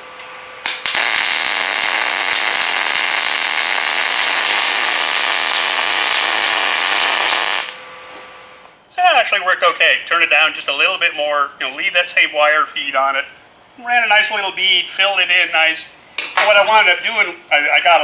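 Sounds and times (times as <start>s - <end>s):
welding arc running: 0.0s - 7.8s.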